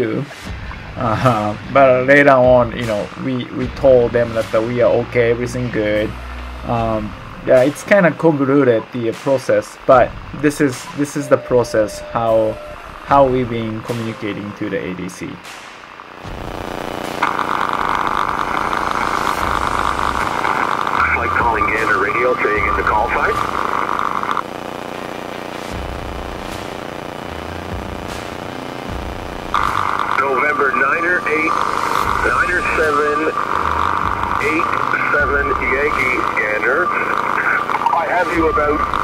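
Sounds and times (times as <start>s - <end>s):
radio static hiss: 0.0s - 39.0s
piston engine drone: 0.3s - 39.0s.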